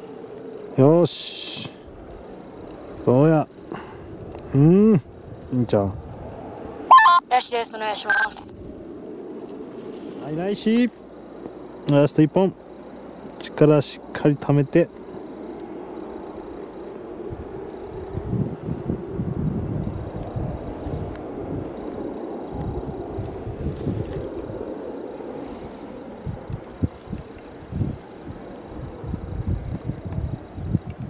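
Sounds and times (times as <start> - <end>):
wind buffeting microphone: 1.8 - 6.9, 8.5 - 10.5, 14.9 - 31.0.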